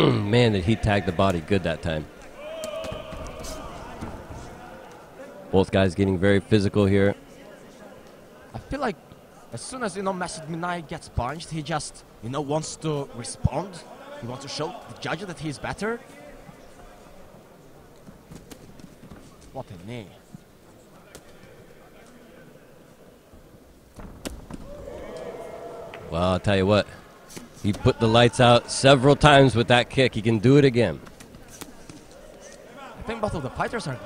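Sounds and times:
kickboxing ring ambience: 0:00.0 - 0:05.6, 0:16.3 - 0:34.0.

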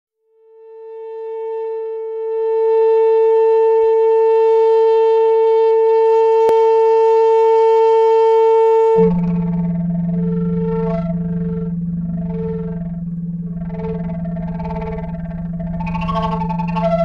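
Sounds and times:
sustained electronic musical tone: 0:09.0 - 0:17.0.

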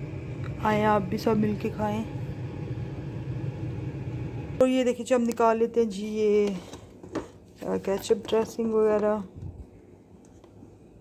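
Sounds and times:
steady low rumble: 0:00.0 - 0:04.6.

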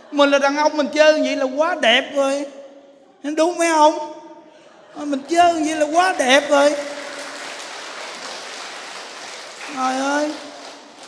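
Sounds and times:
children applauding: 0:05.3 - 0:11.0.

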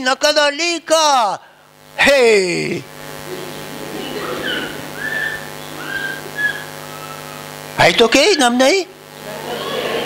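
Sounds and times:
electrical hum: 0:00.0 - 0:10.0
high chirping calls: 0:04.0 - 0:07.4.

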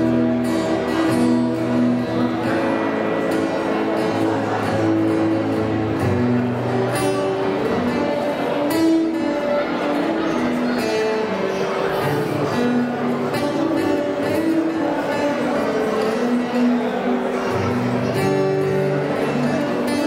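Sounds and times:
acoustic guitar melody and strummed chords: 0:00.0 - 0:20.0.

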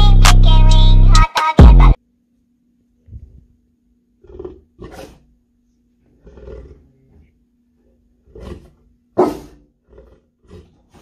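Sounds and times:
dog barking deeply: 0:09.2 - 0:09.7.

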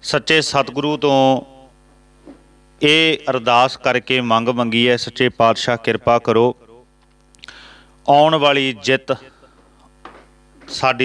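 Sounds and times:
man speaking: 0:00.0 - 0:01.5, 0:02.8 - 0:06.7, 0:08.1 - 0:09.3, 0:10.7 - 0:11.0
steady electrical hum: 0:00.0 - 0:11.0.

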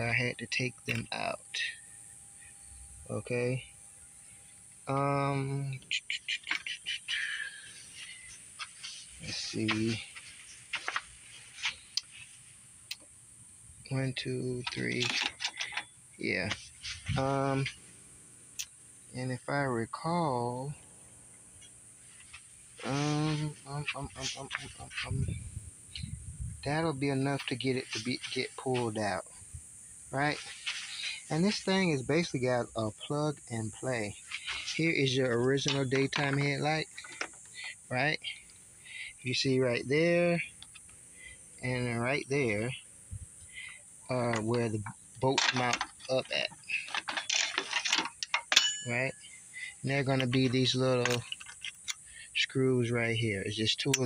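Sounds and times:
background hiss: 0:00.0 - 0:54.0
plastic parts scraping and rustling: 0:07.8 - 0:12.4, 0:14.6 - 0:17.8, 0:34.2 - 0:37.8, 0:44.1 - 0:49.0, 0:50.0 - 0:52.0
man saying um: 0:09.2 - 0:10.0, 0:22.8 - 0:29.2, 0:39.2 - 0:40.4
metallic clink with ringing: 0:48.3 - 0:49.3.

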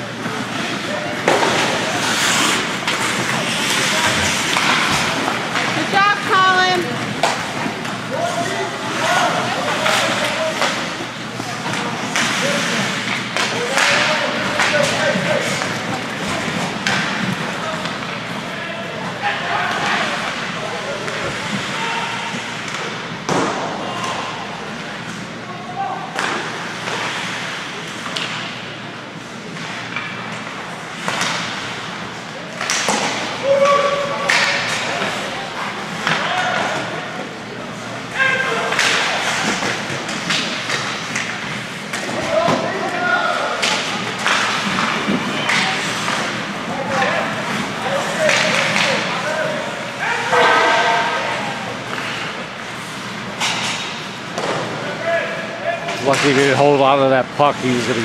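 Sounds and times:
puck and sticks thumping boards: 0:00.2 - 0:18.5, 0:19.1 - 0:25.2, 0:26.1 - 0:28.6, 0:29.6 - 0:32.0, 0:32.6 - 0:37.0, 0:38.1 - 0:54.9, 0:55.9 - 0:56.6.

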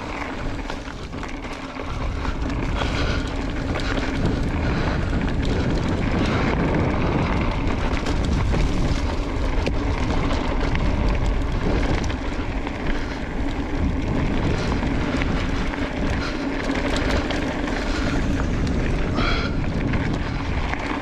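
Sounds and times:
electric bike motor hum: 0:00.0 - 0:21.0
tyre noise on dirt: 0:00.0 - 0:21.0
wind buffeting microphone: 0:00.0 - 0:21.0.

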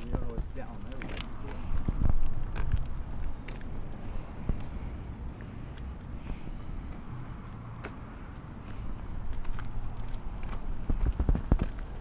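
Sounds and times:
bicycle tyres rumbling on asphalt: 0:00.0 - 0:12.0
wind on microphone: 0:01.7 - 0:02.9, 0:10.7 - 0:12.0.

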